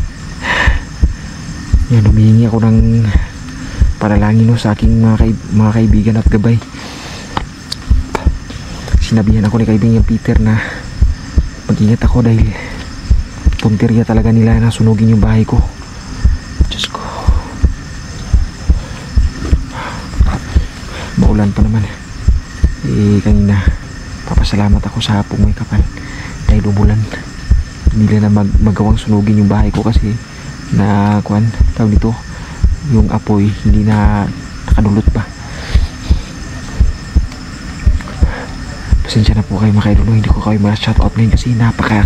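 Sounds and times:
heartbeat-like thumping: 0.0s - 2.2s, 2.8s - 6.4s, 7.4s - 25.9s, 26.5s - 29.0s, 31.5s - 40.1s, 40.9s - 41.4s
grass rustling: 0.0s - 25.6s
high-pitched chirring: 7.2s - 42.0s.

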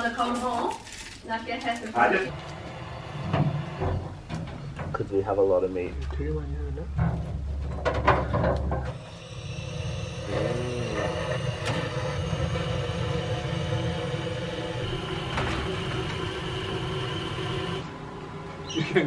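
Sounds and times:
butane torch hissing: 2.3s - 4.3s, 8.9s - 17.9s.

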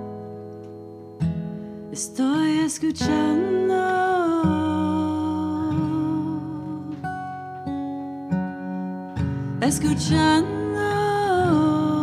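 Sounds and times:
acoustic guitar: 0.0s - 12.0s
woman singing slow song: 1.9s - 7.8s, 9.2s - 12.0s.

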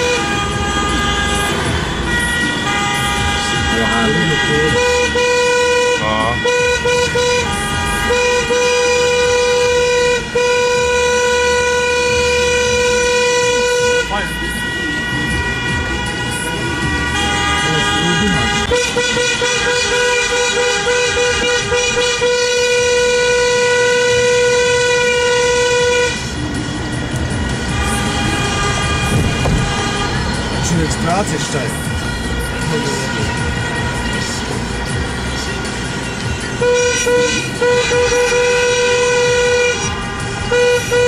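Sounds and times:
car horns honking: 0.0s - 41.0s.

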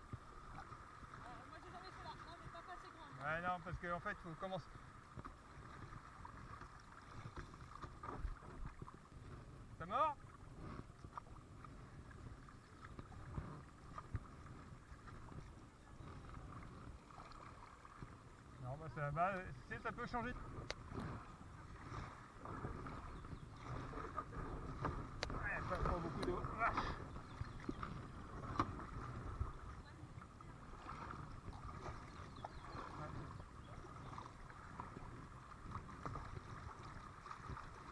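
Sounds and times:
wind rumble on microphone: 0.0s - 3.9s, 4.7s - 37.9s
kayak paddle dipping in water: 0.0s - 37.9s.

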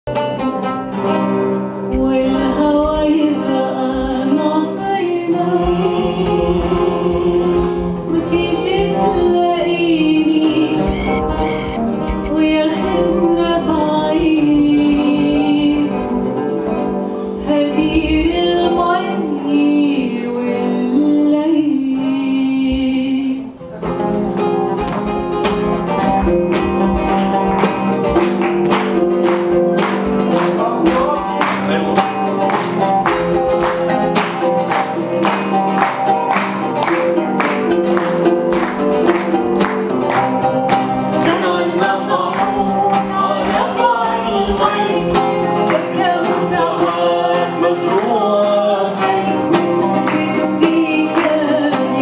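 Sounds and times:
oud and guitars plucking: 0.1s - 52.0s
woman singing: 1.9s - 23.7s, 39.6s - 52.0s.

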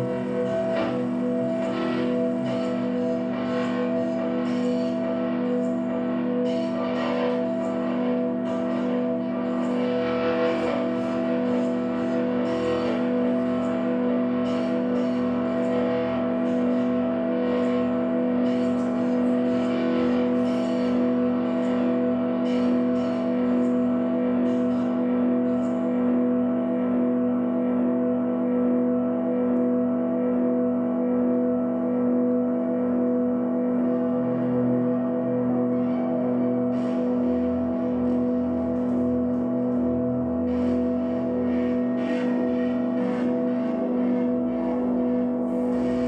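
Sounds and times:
ambient drone music: 0.0s - 46.0s
electric guitar through effects: 0.0s - 46.0s.

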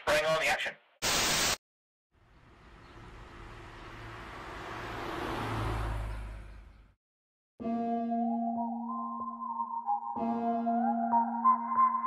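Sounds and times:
vehicle passing: 2.5s - 6.9s.

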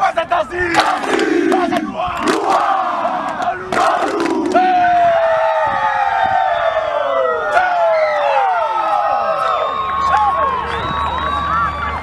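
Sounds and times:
long shout by many voices: 0.1s - 12.0s.

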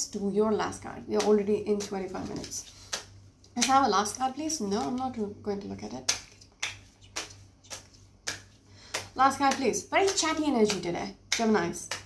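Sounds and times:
cards being shuffled: 1.8s - 3.1s, 6.1s - 12.0s
card slaps: 6.1s - 12.0s.

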